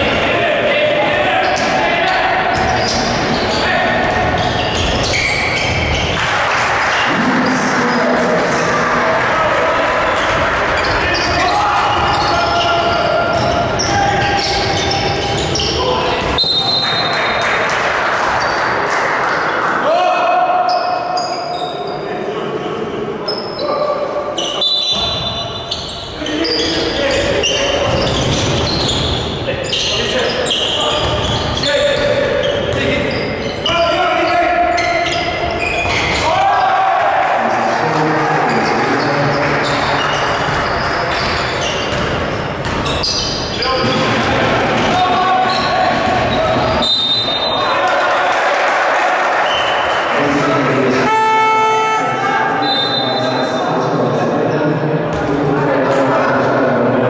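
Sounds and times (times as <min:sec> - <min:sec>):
players' voices: 0:00.0 - 0:57.0
sneakers squeaking: 0:01.0 - 0:06.3, 0:10.0 - 0:17.6, 0:18.2 - 0:19.6, 0:20.6 - 0:22.2, 0:23.2 - 0:36.7, 0:38.5 - 0:47.8, 0:51.0 - 0:53.6.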